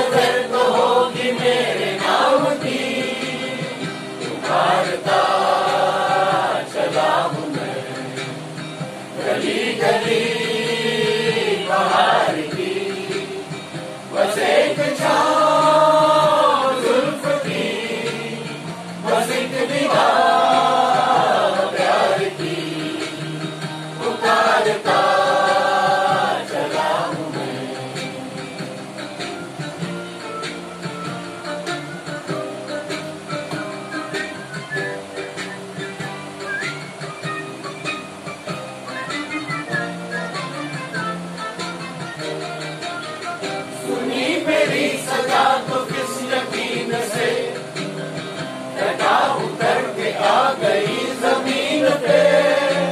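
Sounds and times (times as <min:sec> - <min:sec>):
mixed chorus singing in unison: 0:00.0 - 0:29.0, 0:43.7 - 0:52.9.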